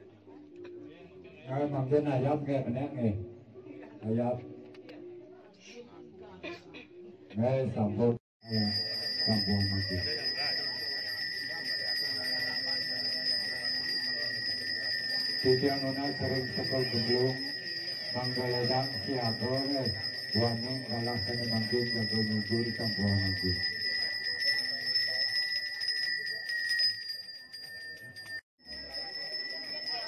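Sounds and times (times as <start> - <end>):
murmur of voices: 0.0 - 8.2, 9.2 - 26.6
hand bell ringing: 8.4 - 30.0.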